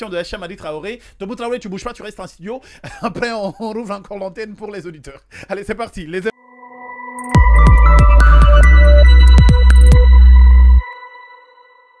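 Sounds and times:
high ringing tone: 6.4s - 12.0s
bass-heavy electronic beat: 7.2s - 10.8s.

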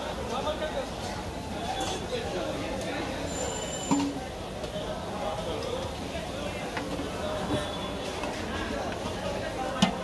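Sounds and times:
traffic: 0.0s - 10.0s.

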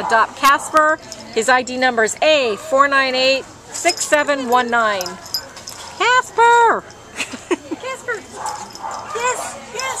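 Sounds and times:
people talking: 0.0s - 5.4s, 6.0s - 8.5s, 9.1s - 10.0s.

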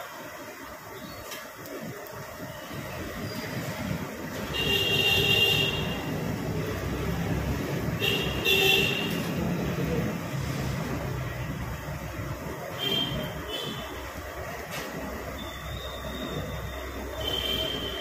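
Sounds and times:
street traffic: 0.0s - 18.0s
vehicle horn toots: 4.4s - 6.2s, 8.0s - 9.4s, 12.7s - 14.0s, 17.1s - 18.0s.

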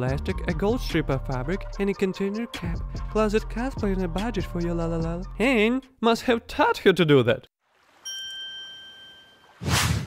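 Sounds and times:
bell-like ding: 8.1s - 9.6s
short rushing whoosh: 9.6s - 10.0s.

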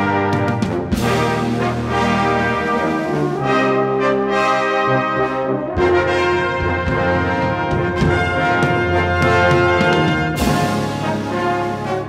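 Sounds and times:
brass band playing held chords: 0.0s - 12.0s
low brass: 0.0s - 12.0s.

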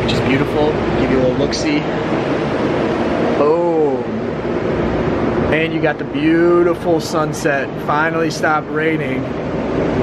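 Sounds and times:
rushing background noise: 0.0s - 10.0s.

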